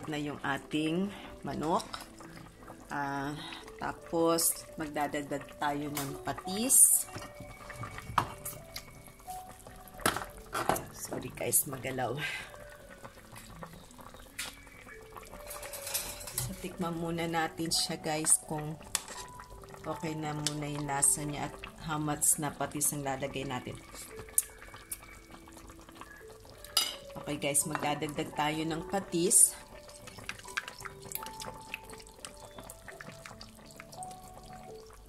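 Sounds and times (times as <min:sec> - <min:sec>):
broth bubbling in a pot: 0:00.0 - 0:35.0.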